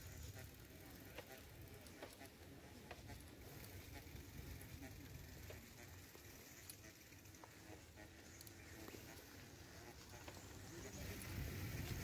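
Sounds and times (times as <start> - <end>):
bicycle rolling on pavement: 0.0 - 12.0
wind rumble on microphone: 10.9 - 12.0.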